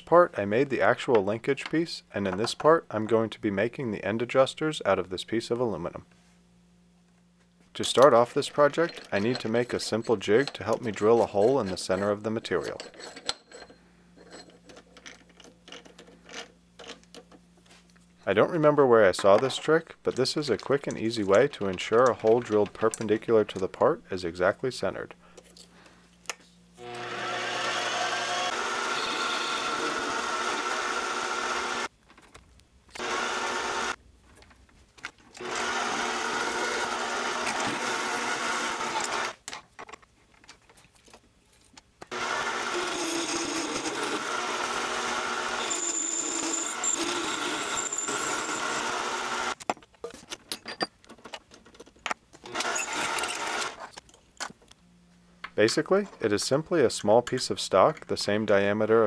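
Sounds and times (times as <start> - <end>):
lathe cutting metal: 26.8 - 31.9, 42.2 - 49.6
metal lathe motor whine: 26.8 - 31.9, 33.0 - 34.0, 42.2 - 49.6.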